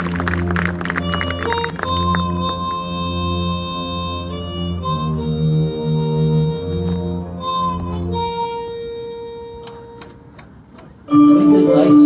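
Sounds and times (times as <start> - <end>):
marching band sustained note: 0.0 - 12.0.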